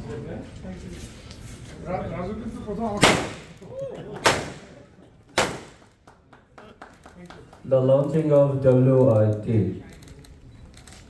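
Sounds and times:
confetti cannon bangs: 3.0s - 3.6s, 4.2s - 4.8s, 5.4s - 5.9s.

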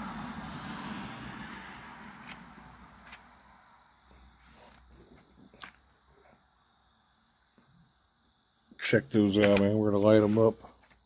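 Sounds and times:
low background noise: 1.9s - 11.0s.

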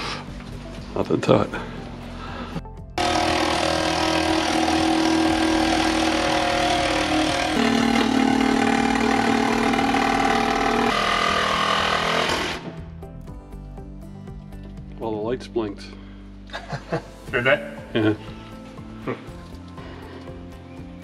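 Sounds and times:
reciprocating saw cutting fiberglass: 3.0s - 12.7s.

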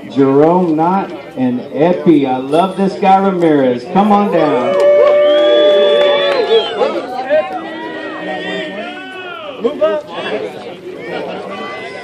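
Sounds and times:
crowd talking and calling out: 0.0s - 12.0s.

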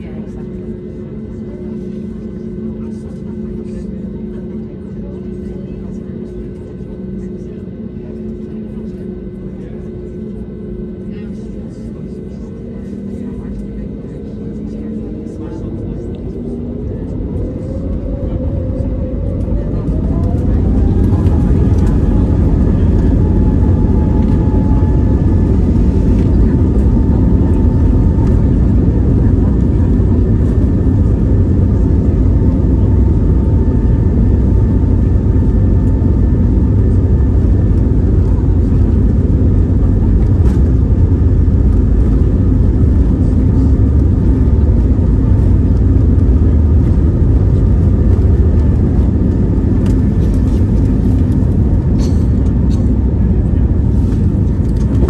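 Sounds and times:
faint engine whine: 0.0s - 55.0s
jet engines rumbling in cabin: 0.0s - 55.0s.

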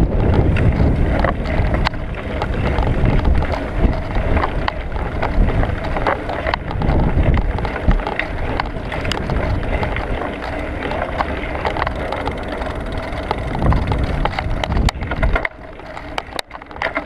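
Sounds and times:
bicycle tyre noise on tarmac: 0.0s - 17.0s
rattling clicks from bicycle: 0.0s - 17.0s
wind rumbling on microphone: 0.0s - 17.0s.

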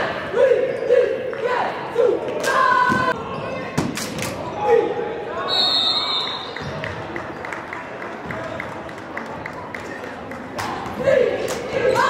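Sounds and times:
players and spectators talking: 0.0s - 12.0s.

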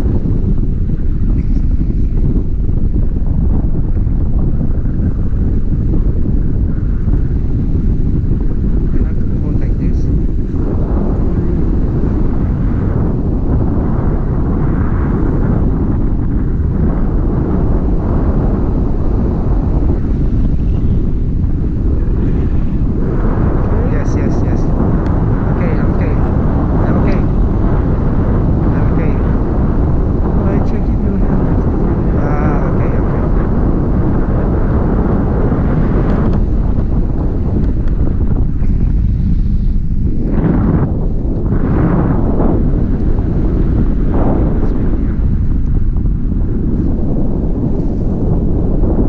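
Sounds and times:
wind rushing over microphone: 0.0s - 49.0s.

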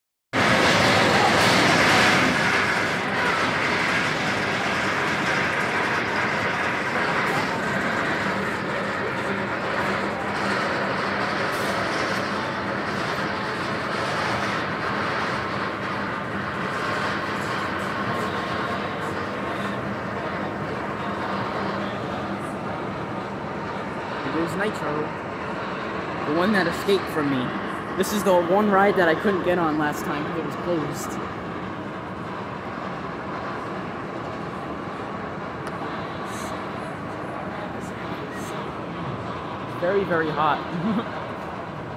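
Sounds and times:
roller coaster chain lift rattling: 0.4s - 34.7s.

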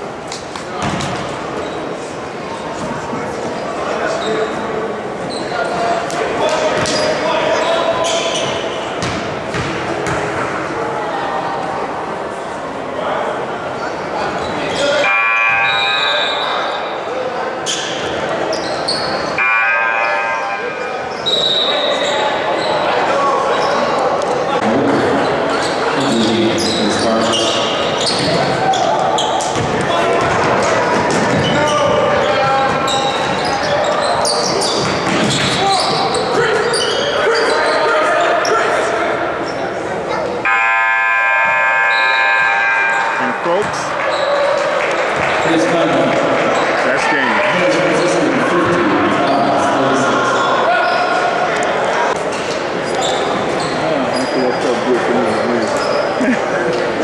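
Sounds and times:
players' voices echoing: 0.0s - 57.0s
shoes squeaking: 0.3s - 10.2s, 17.6s - 19.4s, 24.9s - 38.7s, 52.1s - 57.0s
scoreboard horn buzz: 40.5s - 43.7s.

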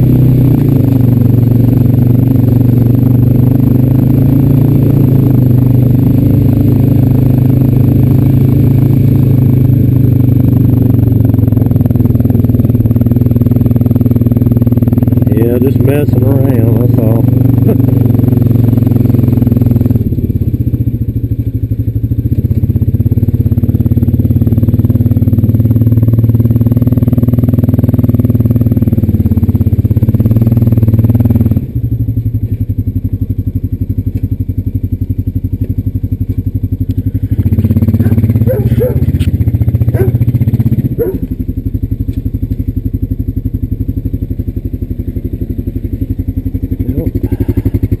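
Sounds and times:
atv engine running and idling: 0.0s - 48.0s.

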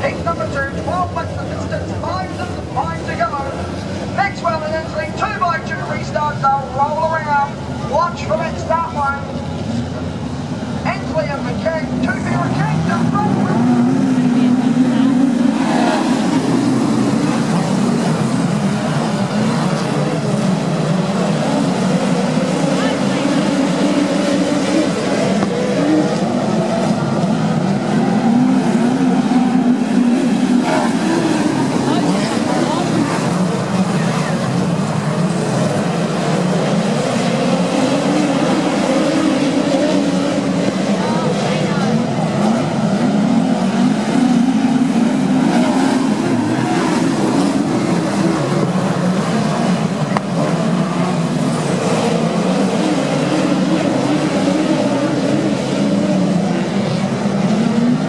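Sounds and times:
several race car engines: 0.0s - 58.0s.

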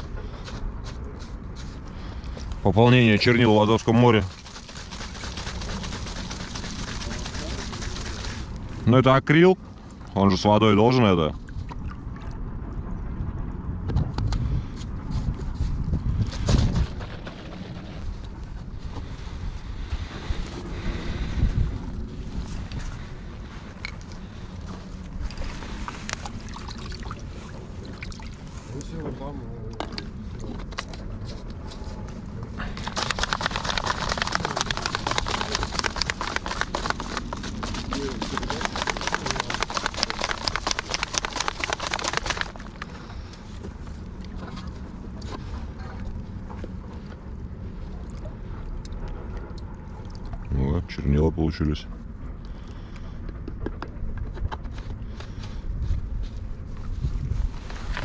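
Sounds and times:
bottle being shaken: 3.3s - 8.9s, 32.6s - 43.0s
wind buffeting microphone: 11.4s - 28.0s, 52.0s - 58.0s
water lapping on rocks: 32.7s - 43.3s.

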